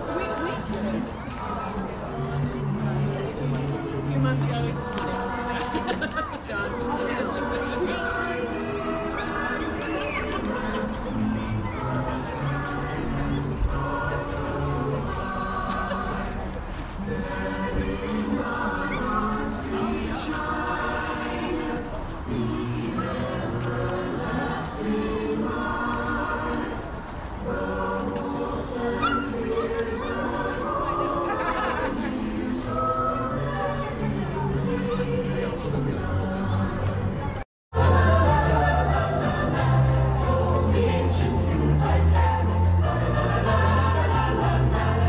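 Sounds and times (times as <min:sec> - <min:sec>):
choir singing slow melody: 0:00.0 - 0:45.0.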